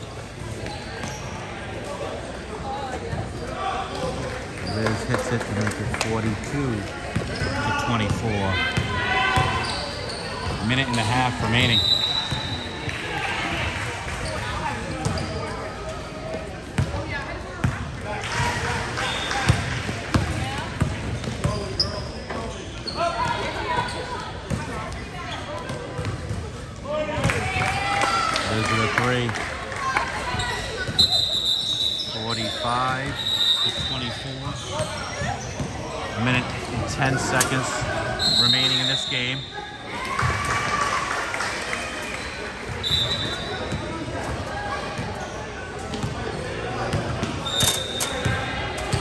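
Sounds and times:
voices of players and spectators: 0.0 - 49.0.

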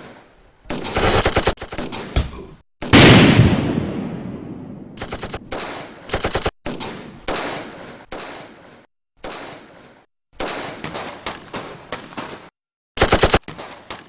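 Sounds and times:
gunshots and gunfire bursts: 0.0 - 2.2, 2.8 - 14.0
loud explosion: 2.9 - 5.0.

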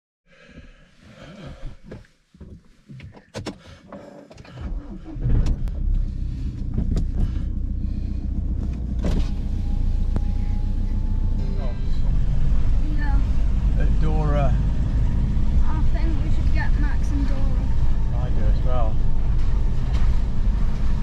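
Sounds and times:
car engine starting and running: 1.4 - 21.0.

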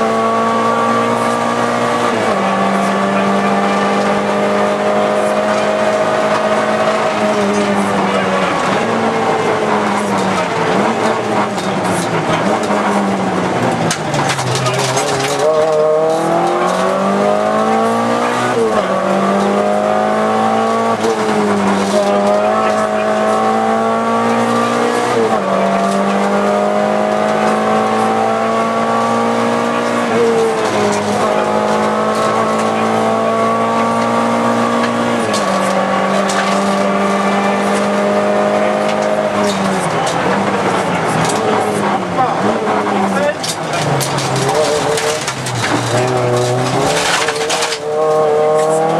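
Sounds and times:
car engine revving: 0.0 - 48.9.

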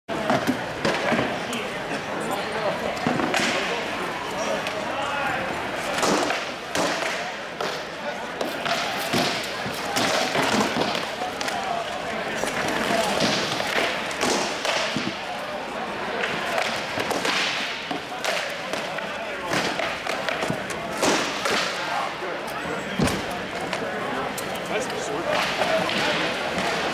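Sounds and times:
background chatter: 0.1 - 26.9.

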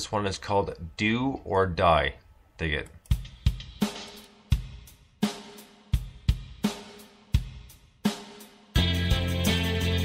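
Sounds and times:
drum kit playing: 3.1 - 10.0.

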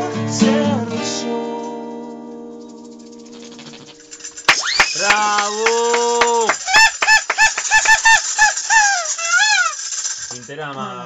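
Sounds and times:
rubber chicken toy squawking: 3.4 - 5.5, 6.6 - 10.0.

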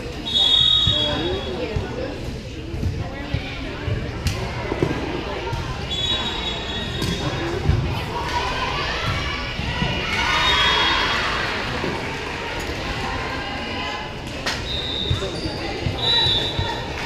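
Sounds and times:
chatter of players and spectators: 0.0 - 17.0.

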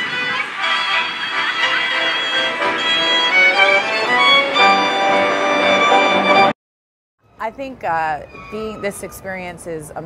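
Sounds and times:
violin playing held notes: 0.0 - 6.6.

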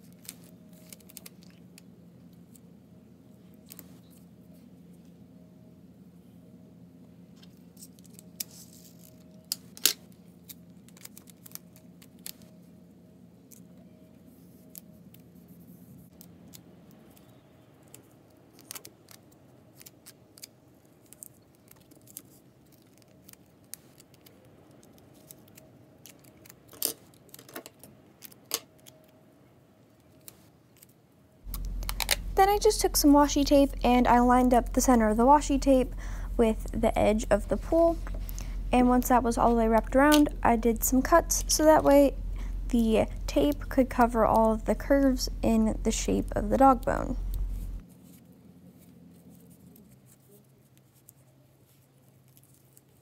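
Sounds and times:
faint low hum: 0.0 - 53.0.

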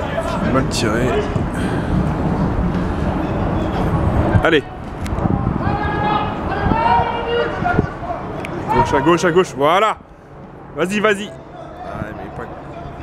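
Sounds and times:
low background noise: 0.0 - 13.0
men shouting: 5.5 - 9.7.

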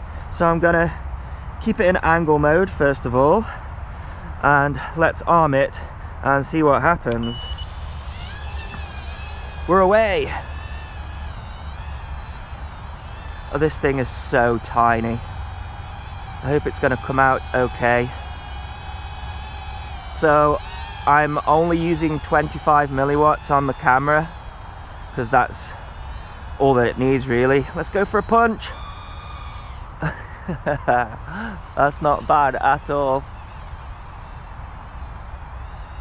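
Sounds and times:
high whine of quadcopter motors: 6.5 - 36.0
micro drone buzzing: 7.1 - 36.0.

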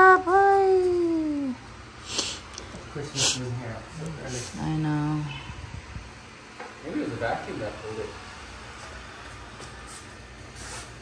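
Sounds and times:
robot vacuum cleaner running: 6.8 - 11.0.

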